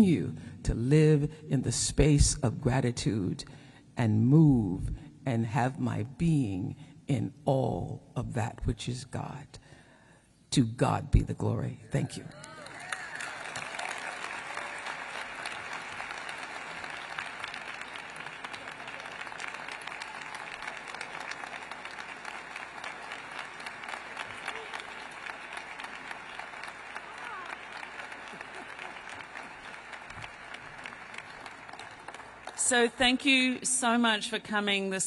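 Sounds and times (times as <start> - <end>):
audience applauding: 12.3 - 32.9.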